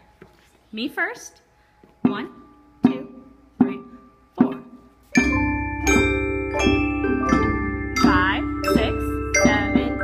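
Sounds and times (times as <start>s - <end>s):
ringing struck notes: 1.6s - 10.0s.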